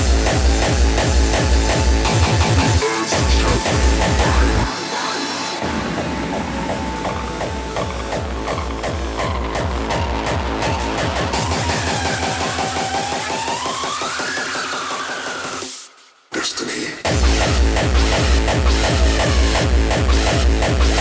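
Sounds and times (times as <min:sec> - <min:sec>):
gliding synth line: 0:00.0 - 0:14.0
electronic dance music: 0:00.0 - 0:21.0.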